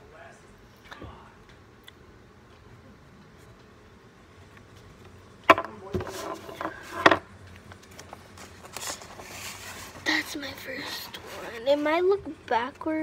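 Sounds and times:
knocks on a tabletop: 5.5 - 6.1
paper rustling: 7.7 - 11.9.

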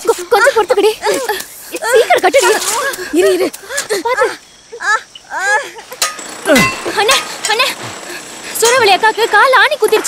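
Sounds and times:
voices calling out: 0.0 - 10.0
metallic clinks: 5.9 - 7.7.

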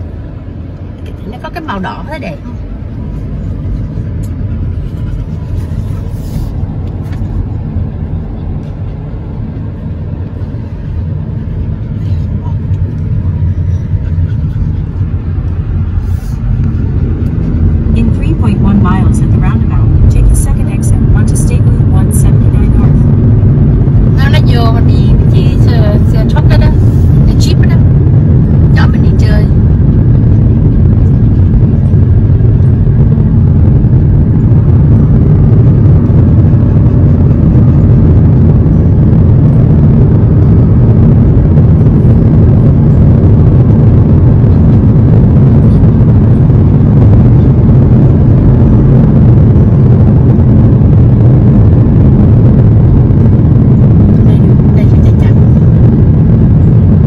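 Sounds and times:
car interior road and engine noise: 0.0 - 57.0.

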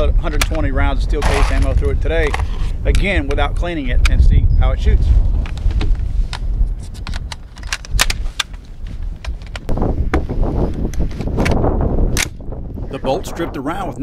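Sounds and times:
wind rumble on microphone: 0.0 - 14.0
metallic clicks of rifle handling: 6.3 - 9.7.

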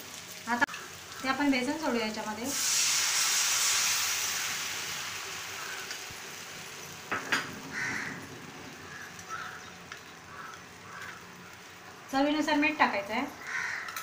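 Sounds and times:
batter sizzling in hot oil: 0.0 - 14.0.

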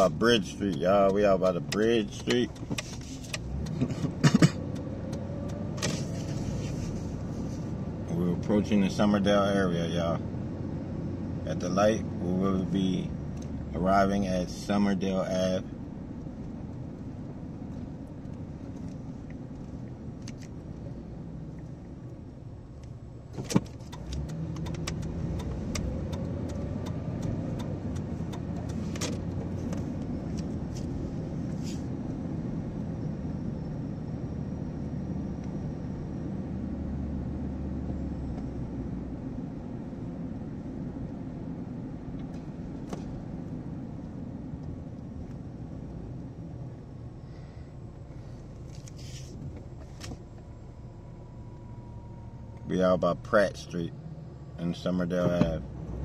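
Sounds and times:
car engine and tyre rumble: 0.0 - 56.0
sharp click: 23.4 - 29.3.

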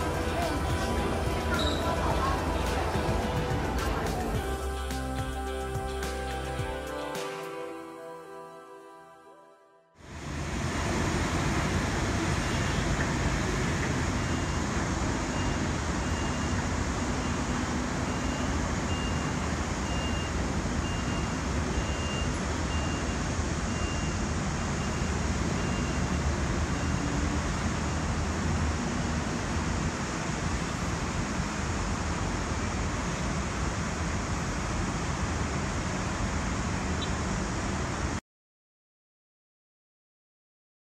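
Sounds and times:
city traffic roar: 0.0 - 7.2, 10.0 - 38.2
faint high beep: 1.5 - 2.3, 15.3 - 16.6, 18.1 - 24.2, 24.8 - 27.1.

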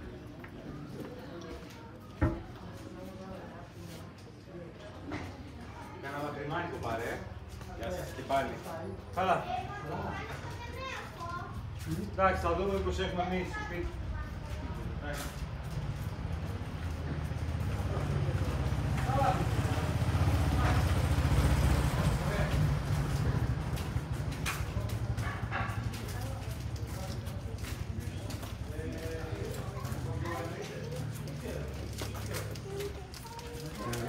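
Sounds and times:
indistinct voices of passers-by: 0.0 - 34.0.

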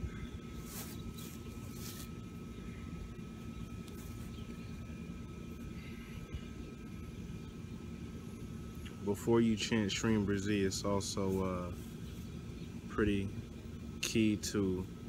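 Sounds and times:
low outdoor rumble: 0.0 - 15.0.

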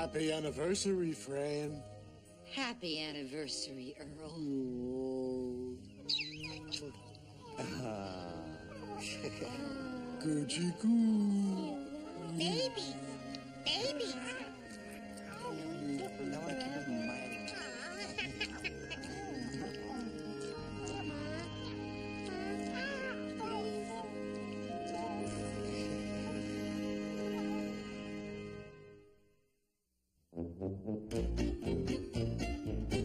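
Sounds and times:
soft background music: 0.0 - 29.0
squeaky animal-like calls: 6.0 - 7.6, 17.0 - 21.8.

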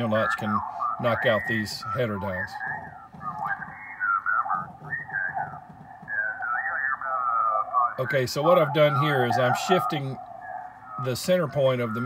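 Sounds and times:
thin radio voice from speaker: 0.0 - 12.0.

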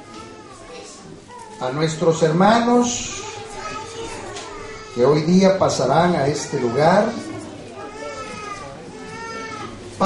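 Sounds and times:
small child whining cries: 7.8 - 9.8.

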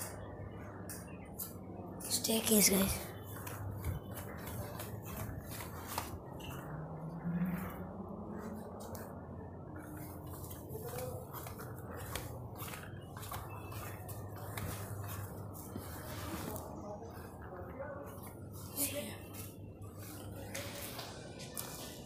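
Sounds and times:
low rising tone: 6.6 - 8.8.

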